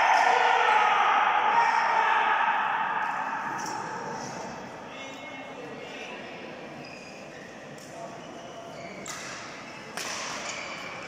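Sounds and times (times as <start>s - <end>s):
people shouting and cheering: 0.0s - 4.6s.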